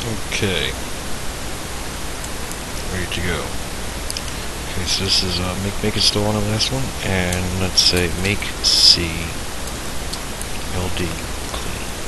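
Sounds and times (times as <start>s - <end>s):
low hum: 0.0s - 12.0s
steady background hiss: 0.0s - 12.0s.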